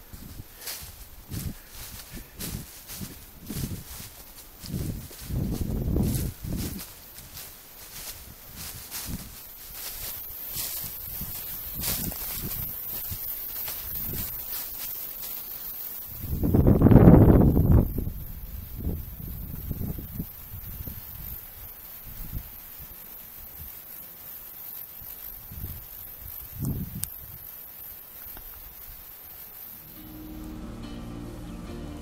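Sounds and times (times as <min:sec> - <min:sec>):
footsteps through dry leaves: 0:00.0 - 0:22.4, 0:29.7 - 0:32.0
low rush of noise: 0:29.7 - 0:32.0.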